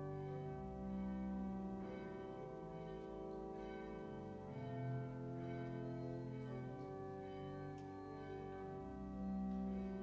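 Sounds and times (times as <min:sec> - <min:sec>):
instrumental music with bell-like chords: 0:00.0 - 0:10.0.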